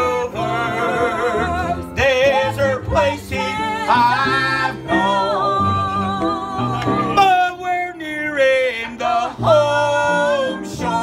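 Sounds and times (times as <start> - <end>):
man singing gospel song: 0.0 - 5.6, 7.0 - 11.0
instrumental accompaniment: 0.0 - 11.0.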